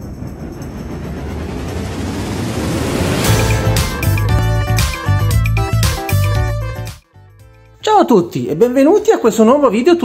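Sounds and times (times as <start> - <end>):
rumbling swell of noise: 0.0 - 5.8.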